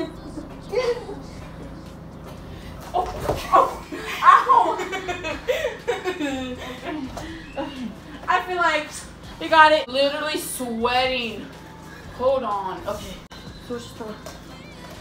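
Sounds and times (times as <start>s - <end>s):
woman laughing: 0.0s - 1.8s, 3.4s - 8.3s.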